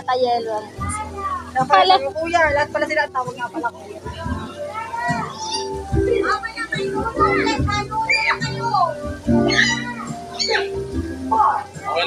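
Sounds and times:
background music: 0.0s - 12.0s
children calling and chattering: 0.0s - 12.0s.

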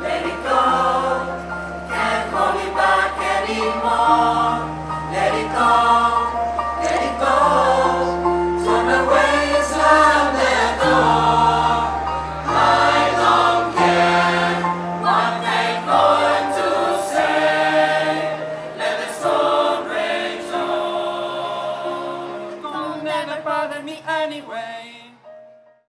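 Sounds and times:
mixed choir singing: 0.0s - 24.6s
keyboard accompaniment: 0.0s - 25.9s.

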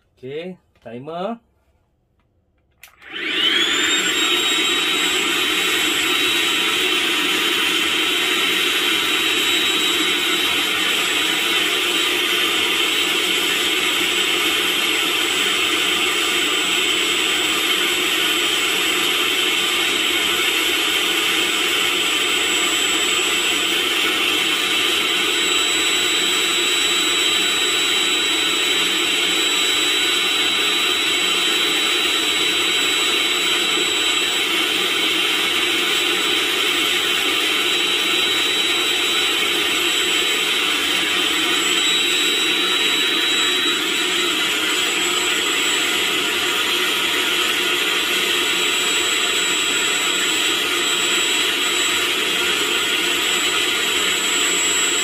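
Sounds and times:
hand vacuum motor whining: 2.8s - 55.0s.

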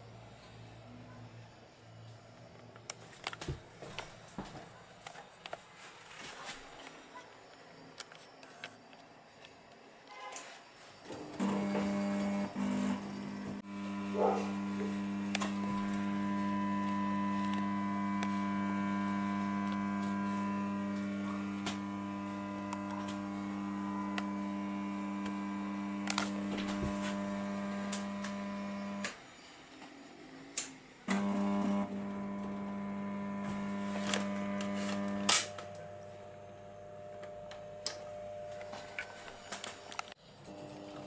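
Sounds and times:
fluorescent light mains hum: 11.8s - 41.0s.

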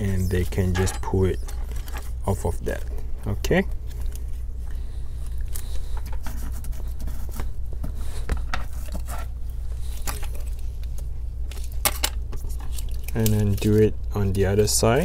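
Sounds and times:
low hum: 0.0s - 15.0s
tape crackle: 3.8s - 15.0s.

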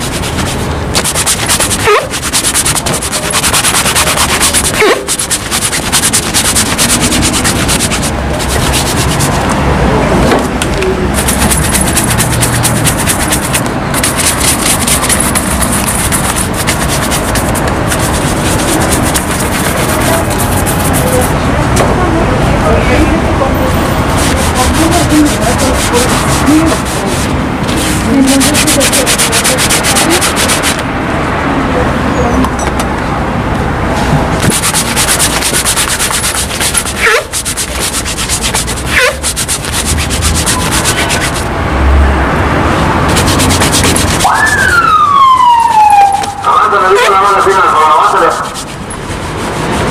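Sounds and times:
cloth buffing leather shoe: 0.0s - 9.6s, 11.1s - 21.4s, 24.1s - 30.8s, 34.4s - 41.5s, 43.1s - 44.3s, 46.2s - 49.9s.

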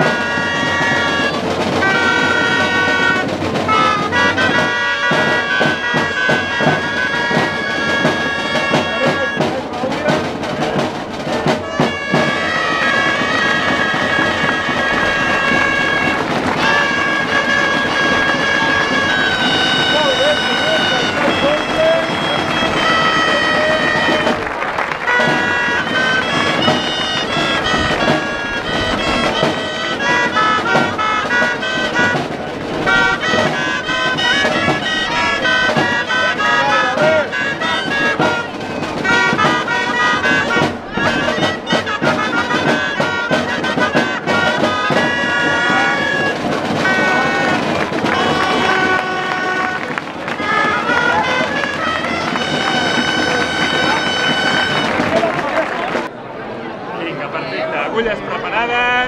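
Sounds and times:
shawms playing shrill melody: 0.0s - 56.1s.

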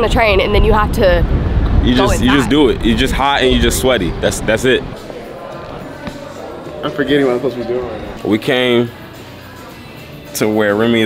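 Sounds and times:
indistinct restaurant room noise: 1.9s - 11.0s.

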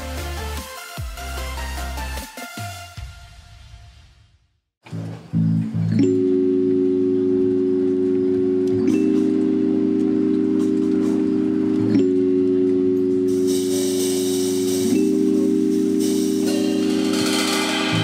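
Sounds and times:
sustained keyboard chords: 4.8s - 18.0s
cymbal wash: 13.3s - 18.0s.

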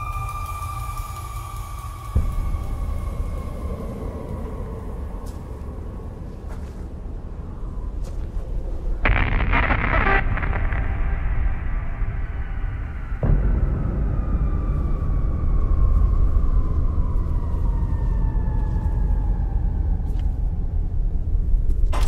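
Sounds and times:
deep rumbling drone: 0.0s - 22.0s
low impact hit: 9.0s - 17.0s.

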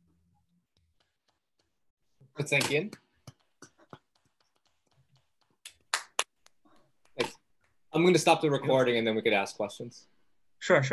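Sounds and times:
hand claps: 3.2s - 7.8s.

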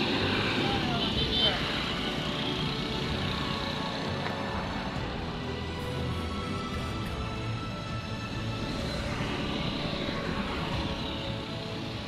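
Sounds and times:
cars passing: 0.0s - 12.0s
lorry passing: 0.0s - 12.0s
motorcycles passing: 0.0s - 12.0s.

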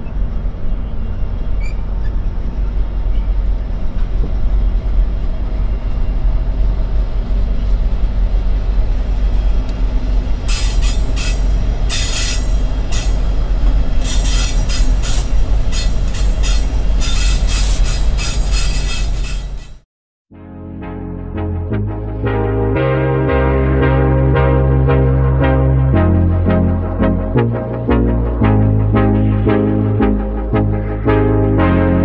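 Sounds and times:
diesel locomotive engine rumble: 0.0s - 19.8s, 21.6s - 32.0s
hissing wheel-on-rail noise: 0.0s - 19.8s.

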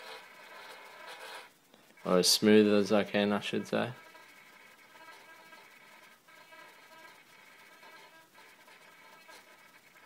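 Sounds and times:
servo motor whine: 4.0s - 10.0s.

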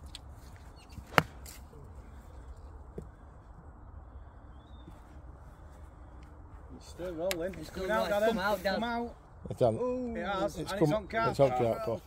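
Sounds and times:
golf club striking ball: 1.0s - 1.6s.

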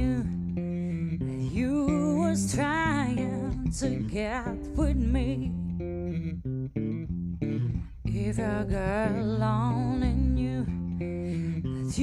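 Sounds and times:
electric bass guitar plucked notes: 0.0s - 12.0s.

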